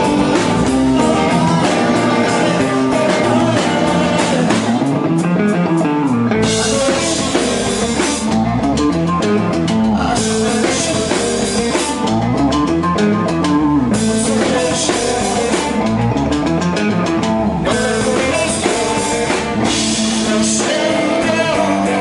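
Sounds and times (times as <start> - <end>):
bass guitar: 0.0 - 22.0
drum kit with cymbal wash: 0.0 - 22.0
electric guitar: 0.0 - 22.0.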